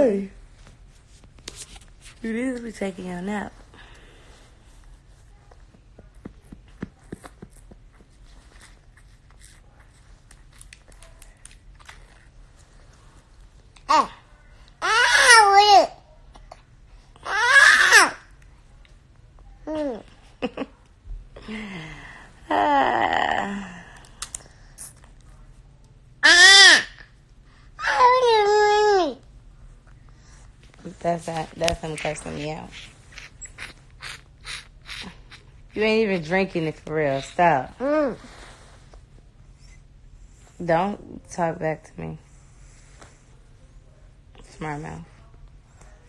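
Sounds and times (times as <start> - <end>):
low steady hum: 0.0 - 46.0
toddler sucking from a bottle: 32.3 - 35.8.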